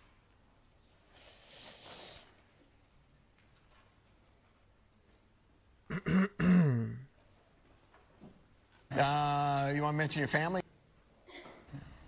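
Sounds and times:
man clearing his throat: 5.9s - 7.1s.

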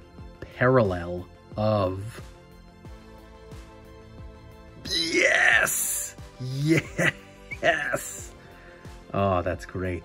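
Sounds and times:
background music with beat: 0.0s - 10.0s
man excited cry: 4.8s - 8.4s.

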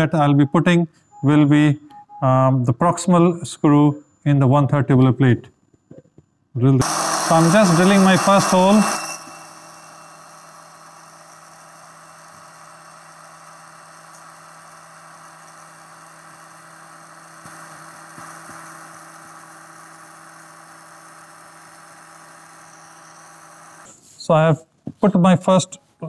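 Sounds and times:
surgical drill whirring: 6.8s - 24.0s.

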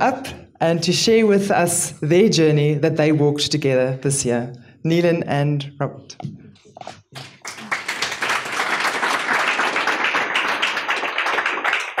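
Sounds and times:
audience applause: 7.2s - 12.0s.

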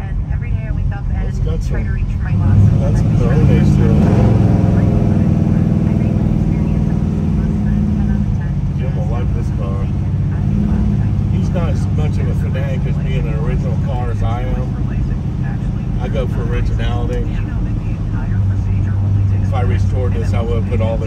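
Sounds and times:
car engine running from inside cabin: 0.0s - 21.0s.

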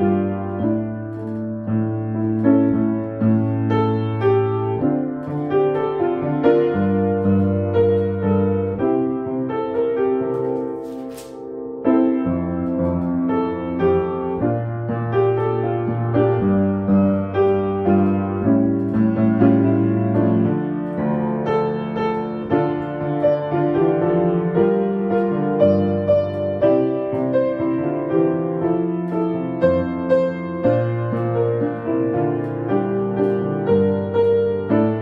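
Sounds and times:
grand piano playing a hymn: 0.0s - 35.0s.

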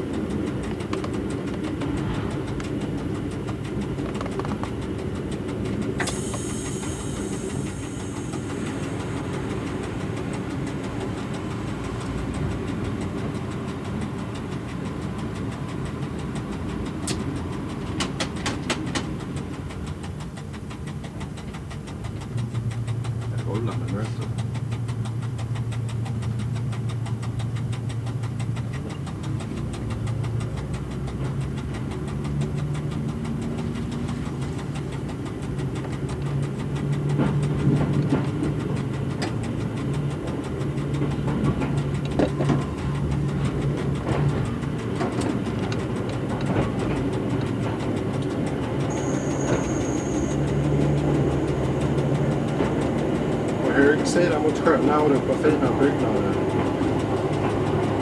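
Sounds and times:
diesel engine pulling away: 0.0s - 58.0s
wheels clicking over rail joints: 0.0s - 58.0s.

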